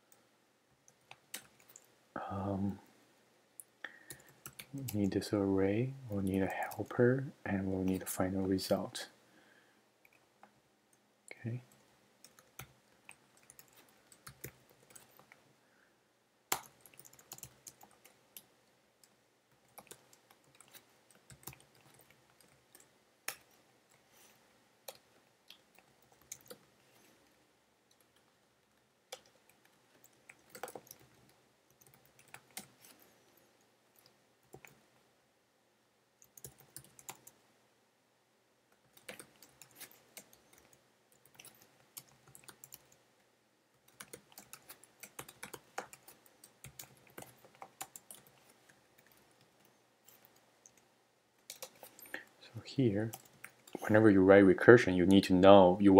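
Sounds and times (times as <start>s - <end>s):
computer keyboard typing: 0.9s - 1.9s, 4.0s - 5.1s, 11.7s - 15.4s, 16.5s - 24.0s, 24.8s - 26.7s, 27.9s - 33.0s, 34.0s - 34.8s, 36.2s - 37.4s, 38.8s - 43.0s, 43.8s - 50.8s, 51.4s - 52.2s, 53.0s - 53.9s.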